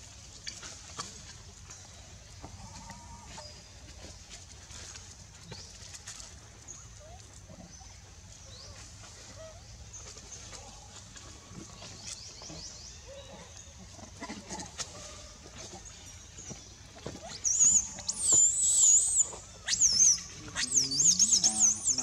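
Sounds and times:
baby monkey squealing: 0:17.5 - 0:22.0.

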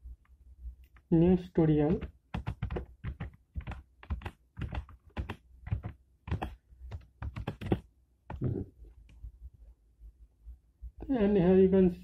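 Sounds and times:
typing on computer keyboard: 0:01.9 - 0:08.4.

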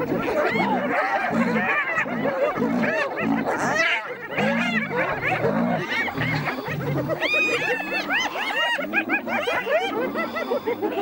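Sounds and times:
lions growling: 0:00.0 - 0:08.5
hyenas giggling and yelping: 0:00.0 - 0:11.0.

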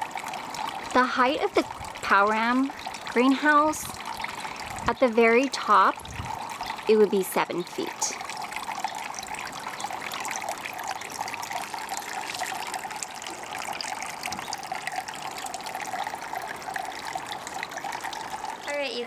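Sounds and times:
water trickling: 0:00.0 - 0:19.0.

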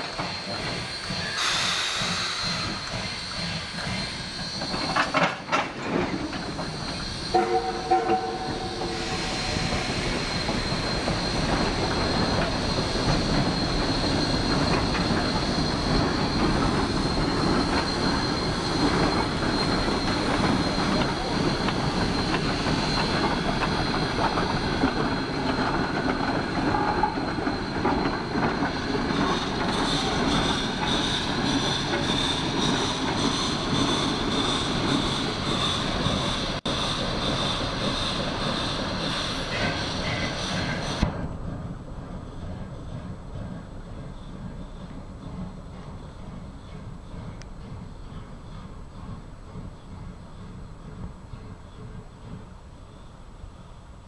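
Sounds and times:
train wheels clattering on rails: 0:00.0 - 0:53.3
steam whistle: 0:07.3 - 0:09.7.

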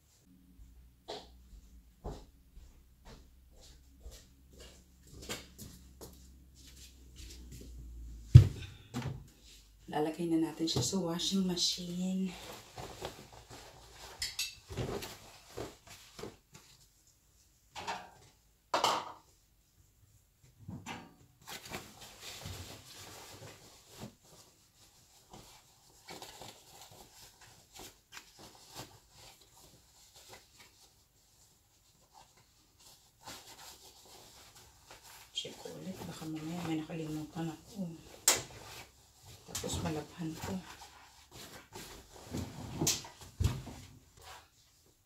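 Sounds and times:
fabric rustling: 0:10.9 - 0:17.6, 0:21.4 - 0:45.0.

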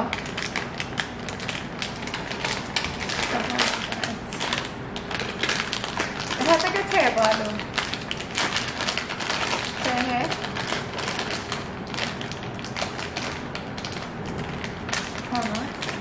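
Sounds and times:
plastic snack packet crinkling: 0:00.0 - 0:16.0.

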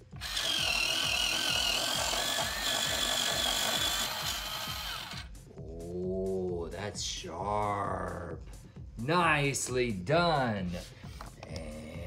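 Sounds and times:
cutters shaving wood: 0:00.0 - 0:05.3
pencil sharpener motor whine: 0:00.0 - 0:05.3.

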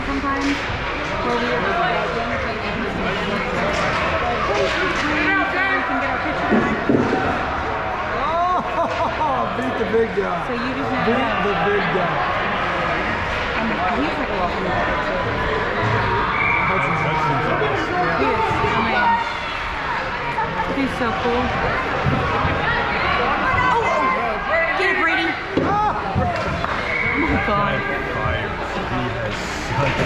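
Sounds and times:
steady background noise: 0:00.0 - 0:30.0.

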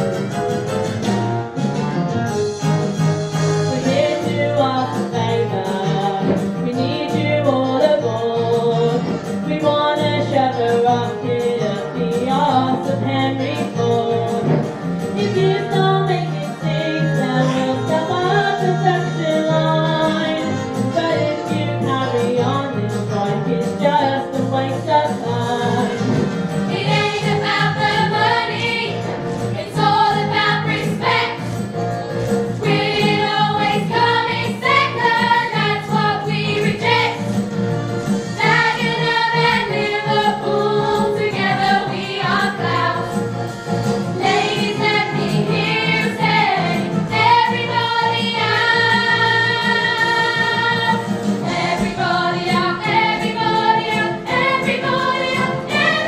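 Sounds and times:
chorus of voices singing: 0:25.6 - 0:31.6, 0:32.6 - 0:37.4, 0:38.4 - 0:56.0.

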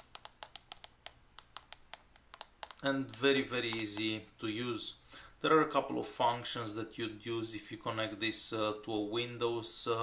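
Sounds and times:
clicky keyboard typing: 0:00.0 - 0:04.1.

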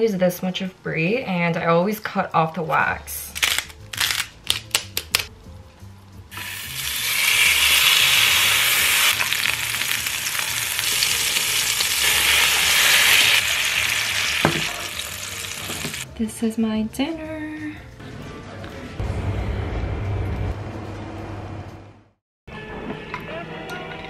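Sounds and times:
steak sizzling in a frying pan: 0:06.4 - 0:16.0.

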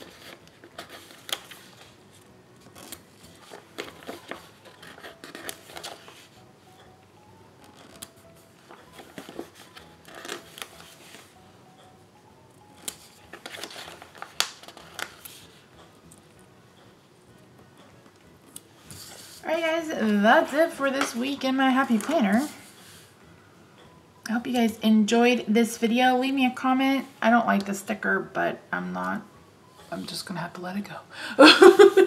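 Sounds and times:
paper sheets rustling: 0:00.0 - 0:02.0, 0:02.6 - 0:06.4, 0:07.7 - 0:11.3, 0:12.9 - 0:15.6.

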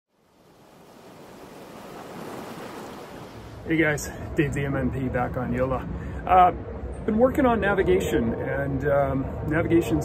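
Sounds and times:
waves rushing: 0:00.1 - 0:04.1.

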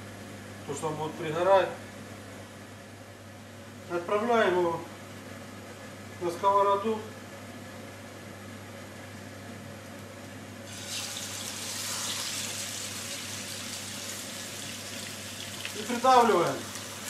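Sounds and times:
chicken sizzling in hot oil: 0:10.6 - 0:17.0.

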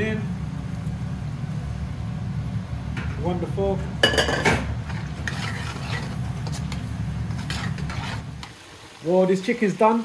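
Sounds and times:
chicken frying in a wok: 0:00.0 - 0:10.0
metal spoon scraping a pan: 0:04.9 - 0:08.5.

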